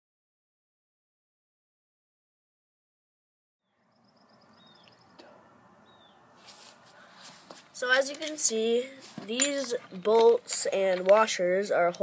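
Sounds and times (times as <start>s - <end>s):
birds calling: 3.7s - 7.2s
rustling: 6.4s - 11.3s.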